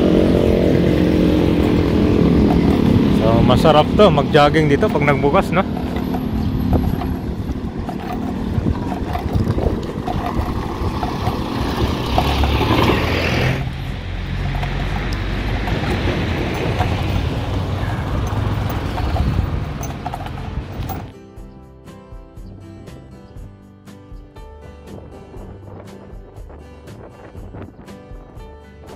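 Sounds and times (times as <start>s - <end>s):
background music: 0.0s - 17.3s, 20.4s - 28.9s
vehicle passing by: 0.0s - 21.1s
passing traffic: 0.0s - 21.2s.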